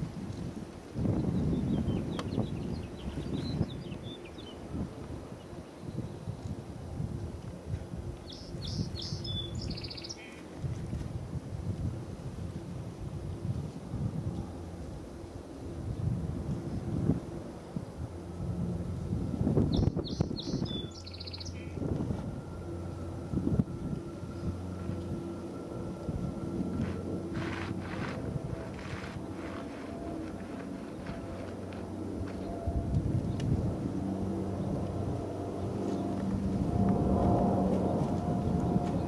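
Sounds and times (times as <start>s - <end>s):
jet engines rumbling: 0.0s - 39.0s
wind on microphone: 0.0s - 39.0s
small bird chirping: 8.2s - 10.4s, 19.7s - 21.8s.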